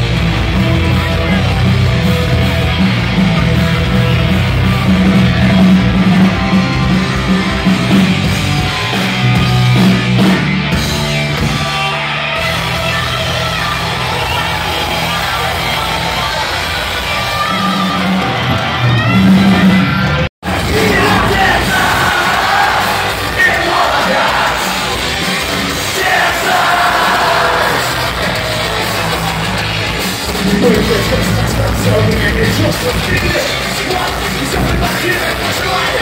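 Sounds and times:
punk rock band playing live: 0.0s - 36.0s
singing and yelling: 11.5s - 36.0s.

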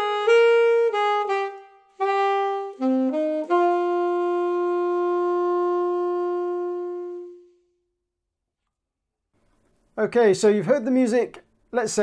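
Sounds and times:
saxophone holding a long note: 0.0s - 7.9s.

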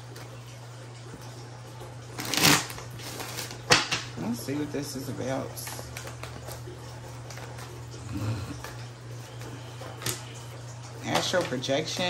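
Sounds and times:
steady low hum: 0.0s - 12.0s
cards being shuffled: 2.2s - 3.8s.

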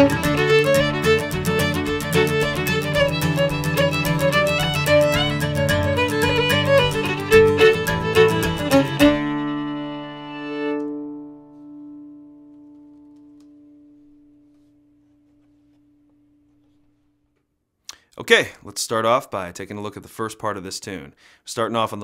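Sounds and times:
fiddle playing a reel: 0.0s - 11.0s
strummed acoustic guitar: 0.0s - 13.1s.

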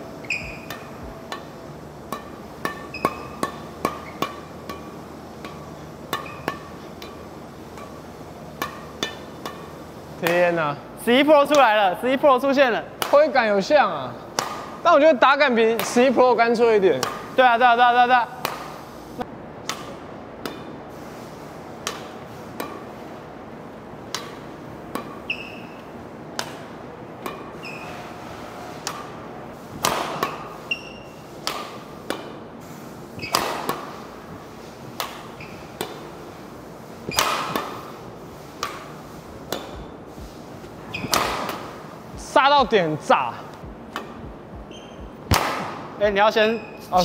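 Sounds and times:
shoes squeaking on court: 0.1s - 9.8s, 21.8s - 29.2s, 30.0s - 32.5s, 33.1s - 47.0s
badminton racket hitting shuttlecock: 0.2s - 10.6s, 14.3s - 14.8s, 17.0s - 17.4s, 18.3s - 18.8s, 19.6s - 20.8s, 21.8s - 23.0s, 24.0s - 27.8s, 28.8s - 29.2s, 29.8s - 32.4s, 33.2s - 36.2s, 37.0s - 46.0s.

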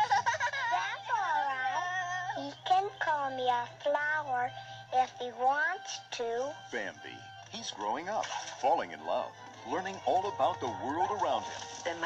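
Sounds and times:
cartoon child voice giggling: 0.0s - 2.2s.

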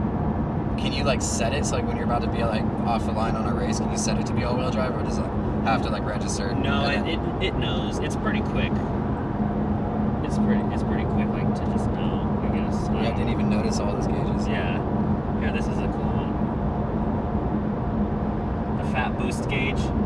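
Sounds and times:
car interior drive noise: 0.0s - 20.0s.

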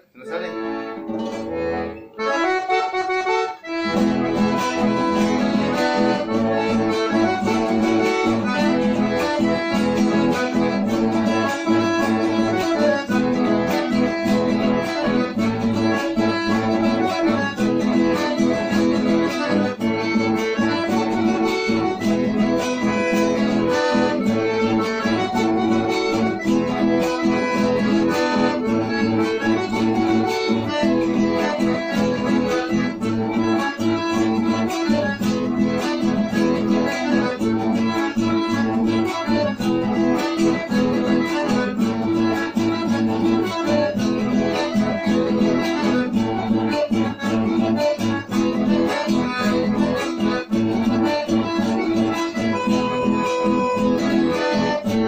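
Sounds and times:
acoustic guitar rhythm: 0.0s - 55.0s
button accordion melody: 0.0s - 55.0s.

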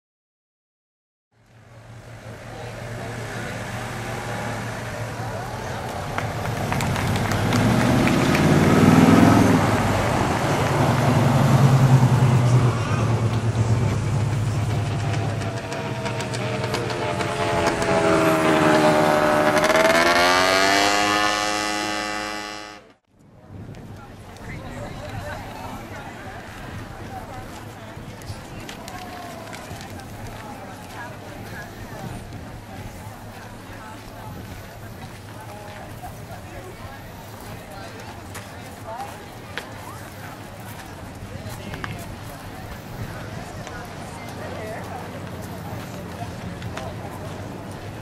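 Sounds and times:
vehicle engines on road: 1.4s - 48.0s
vehicle accelerating: 1.6s - 23.0s.

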